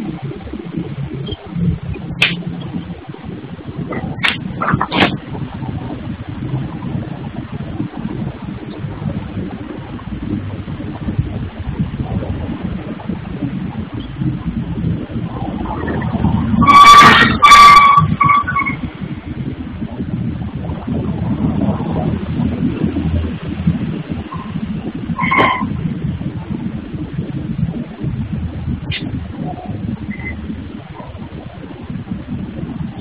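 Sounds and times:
low machinery rumble: 0.0 - 33.0.

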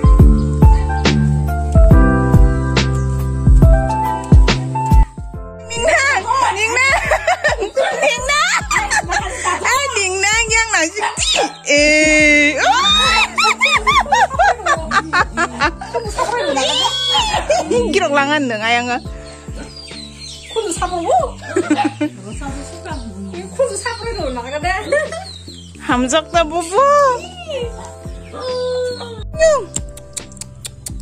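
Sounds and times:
background music: 0.0 - 31.0
high-pitched giggling: 5.7 - 9.9, 11.0 - 18.0, 20.6 - 22.1.

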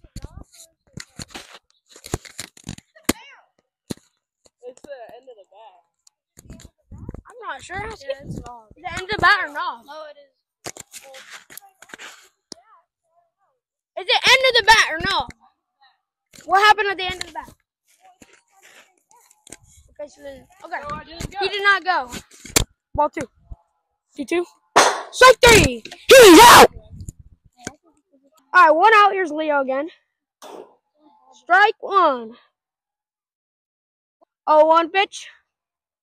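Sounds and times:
microphone rustling and knocks: 6.4 - 9.4
bat hitting plastic ball: 24.8 - 25.2
person exclaiming: 26.1 - 26.7.

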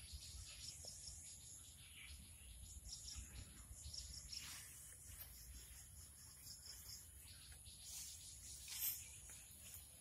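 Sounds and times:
faint insect chirping: 0.0 - 10.0.

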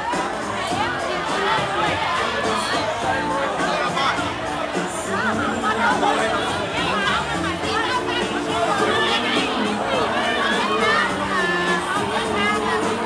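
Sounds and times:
chatter of many voices: 0.0 - 13.0
music playing in a bar: 0.0 - 13.0.

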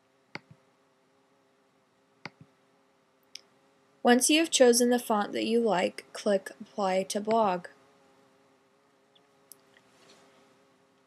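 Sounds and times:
computer mouse clicks: 0.3 - 0.6, 2.2 - 2.5.

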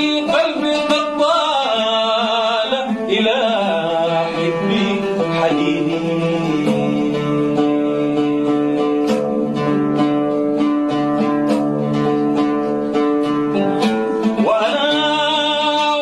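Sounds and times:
man singing: 0.0 - 9.7, 13.8 - 16.0
plucked string instrument: 0.0 - 16.0.

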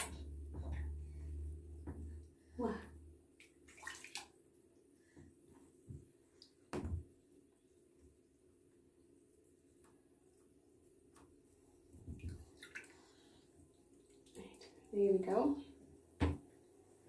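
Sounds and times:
bathwater sloshing: 3.3 - 4.7, 11.8 - 14.9.

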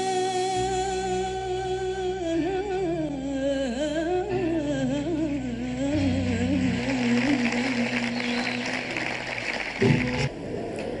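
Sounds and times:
woman singing a long note: 0.0 - 9.0.

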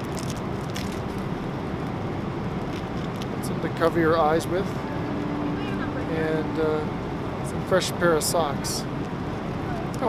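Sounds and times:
faint clicks and crinkles: 0.0 - 2.0, 2.6 - 3.4
airliner cabin drone: 3.6 - 9.9.

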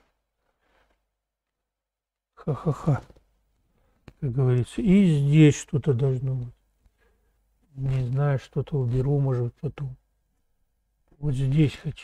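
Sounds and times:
faint soft sounds: 0.0 - 12.0.

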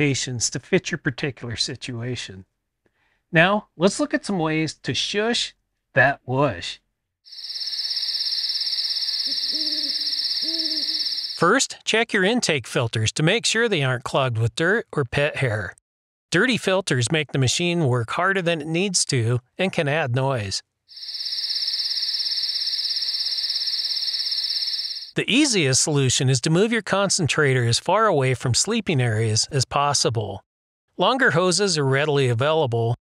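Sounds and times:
insects trilling: 7.3 - 11.4, 20.9 - 25.2
owl hooting: 7.3 - 11.4, 20.9 - 25.5.

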